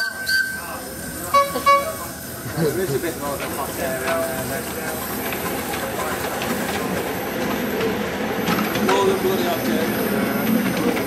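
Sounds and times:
steam locomotive whistle: 0.0s - 2.2s.

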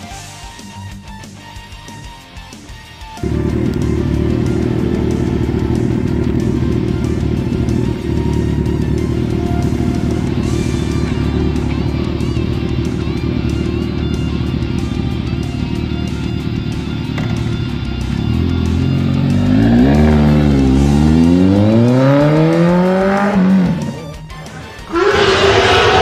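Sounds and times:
motorcycle engine idling: 3.2s - 24.8s.

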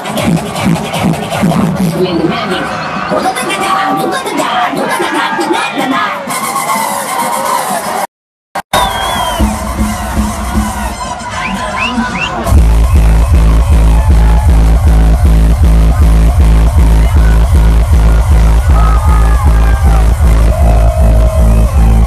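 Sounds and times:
hardstyle dance music: 0.0s - 8.1s, 8.8s - 22.0s
crowd cheering and shouting: 0.0s - 22.0s
heavy kick drum pounding: 9.4s - 10.9s, 12.5s - 22.0s.

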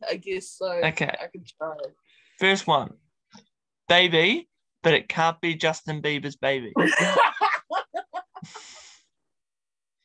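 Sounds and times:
woman laughing hard: 6.8s - 8.8s.

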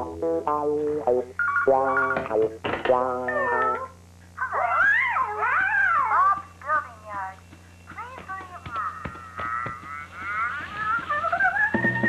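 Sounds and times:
cartoon cat meowing: 3.2s - 6.2s.

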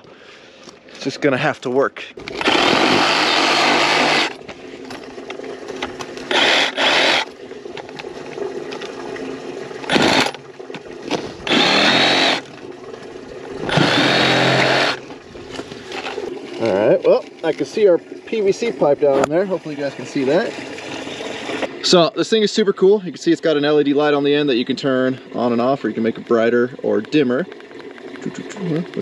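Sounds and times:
reciprocating saw cutting plastic pipe: 2.3s - 4.4s, 6.3s - 7.3s, 9.9s - 10.4s, 11.1s - 12.5s, 13.6s - 15.1s.

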